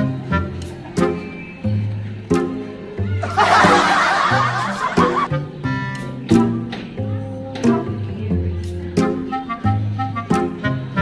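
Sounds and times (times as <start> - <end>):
background music: 0.0 - 11.0
people laughing: 3.2 - 5.3.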